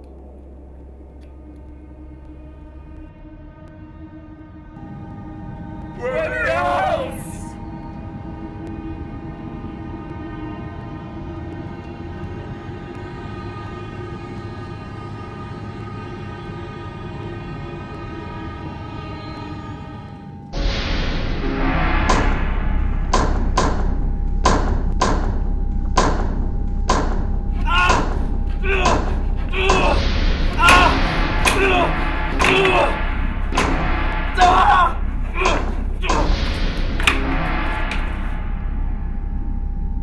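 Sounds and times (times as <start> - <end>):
low rumbling drone: 0.0 - 6.0, 7.5 - 40.0
man shouting: 6.0 - 7.6, 27.6 - 33.0, 34.4 - 36.3.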